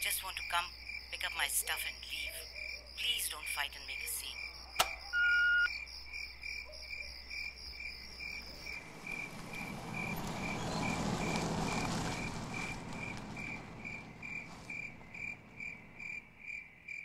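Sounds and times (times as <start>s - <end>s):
crickets chirping: 0.0s - 17.0s
sharp click: 4.8s - 5.0s
short electronic beep: 5.2s - 5.7s
car pulling up: 7.8s - 17.0s.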